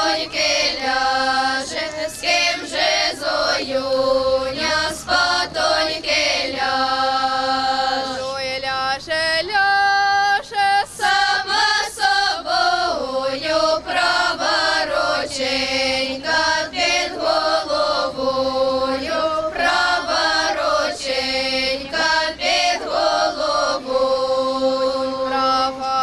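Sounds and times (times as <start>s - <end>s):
women's choir singing folk song: 0.0s - 26.0s.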